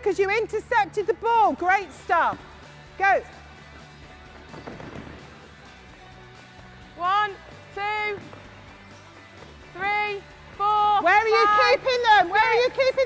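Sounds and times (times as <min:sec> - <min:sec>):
soft background music: 0:00.0 - 0:13.0.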